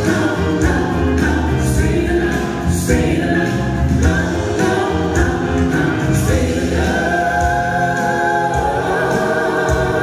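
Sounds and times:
amplified accompaniment with low bass: 0.0s - 10.0s
pop ballad sung in harmony: 0.0s - 10.0s.

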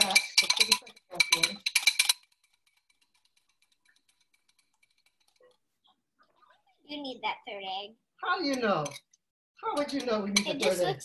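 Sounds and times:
whisk beating egg in bowl: 0.0s - 5.3s.

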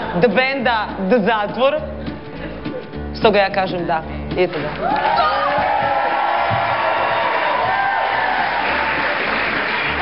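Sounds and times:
audience applauding and cheering: 4.7s - 10.0s.

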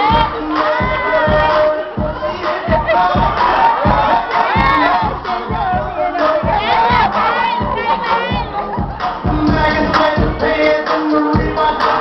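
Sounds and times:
audience cheering and shouting: 0.0s - 12.0s
dance music with bass beat: 0.0s - 12.0s.

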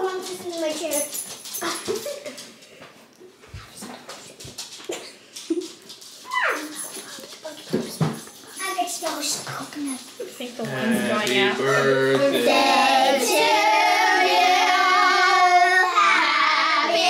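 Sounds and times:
dog whining: 6.2s - 6.9s.

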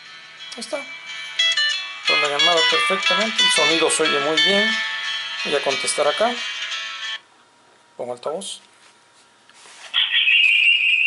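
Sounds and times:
high-pitched feedback whistle: 10.0s - 11.0s.

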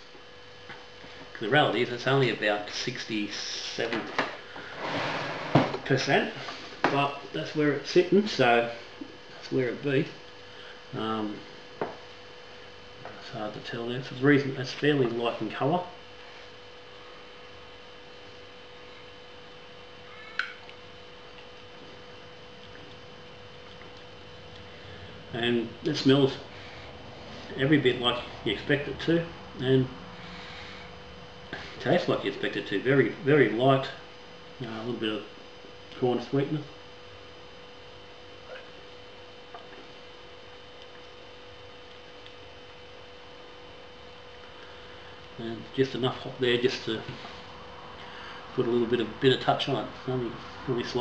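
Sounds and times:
steady hum: 0.0s - 51.0s.

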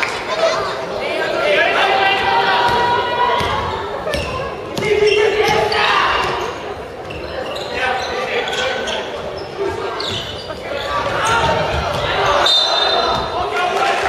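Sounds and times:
players shouting: 1.0s - 6.6s, 9.7s - 14.0s.

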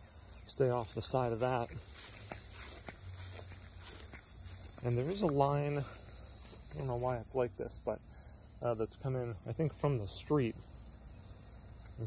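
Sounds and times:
footsteps on grass: 0.1s - 7.6s.

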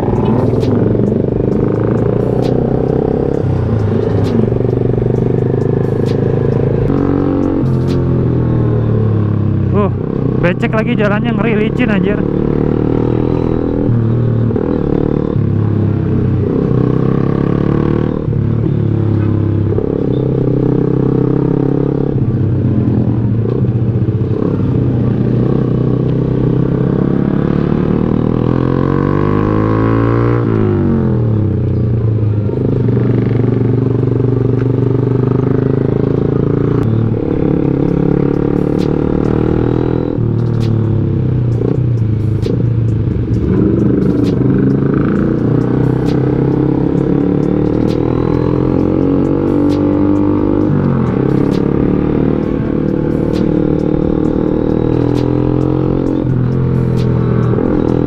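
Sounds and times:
motorcycle engine running: 0.0s - 58.0s
sharp light ticks: 40.4s - 40.8s, 43.4s - 45.2s, 49.6s - 50.7s, 55.0s - 55.4s.

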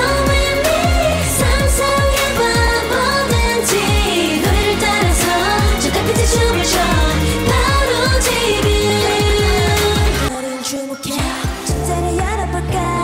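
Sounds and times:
women singing pop song: 0.0s - 13.0s.

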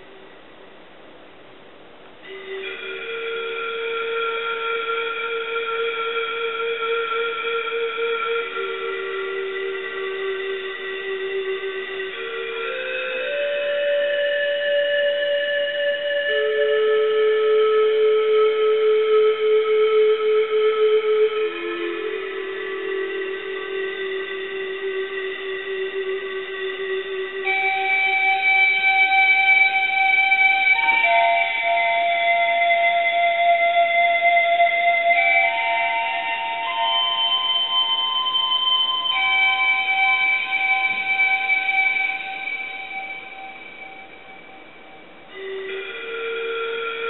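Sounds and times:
synthesized pan flute notes: 2.2s - 47.0s.

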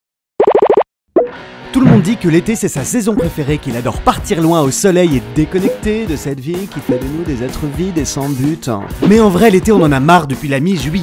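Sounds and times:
cartoonish plop sound effects: 0.4s - 2.1s
background music: 1.2s - 11.0s
voice speaking: 1.8s - 2.2s.

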